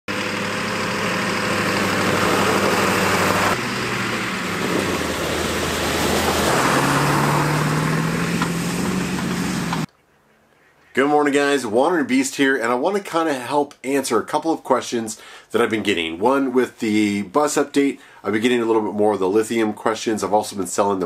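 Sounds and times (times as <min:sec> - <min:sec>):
bus engine running: 0:00.1 - 0:09.9.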